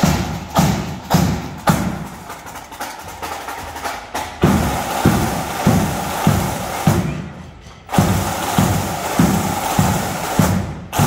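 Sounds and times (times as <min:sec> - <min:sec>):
bass drum beating march time: 0:00.0 - 0:07.3, 0:07.9 - 0:11.0
snare drums rattling: 0:00.0 - 0:11.0.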